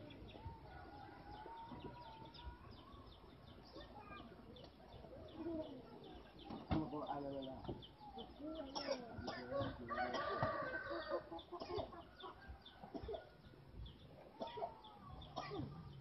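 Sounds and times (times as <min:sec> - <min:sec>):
birds calling and chirping: 0:00.0 - 0:16.0.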